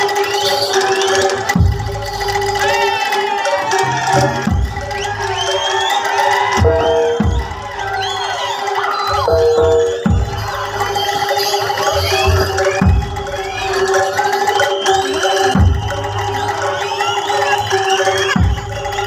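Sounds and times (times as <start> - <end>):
crowd shouting and cheering: 0.0 - 19.0
held tone: 6.6 - 8.4, 9.1 - 15.6.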